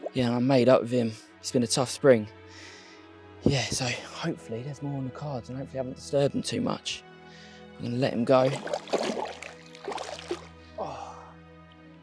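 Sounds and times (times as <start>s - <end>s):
background music: 0.0s - 12.0s
water sloshing and splashing: 8.3s - 10.6s.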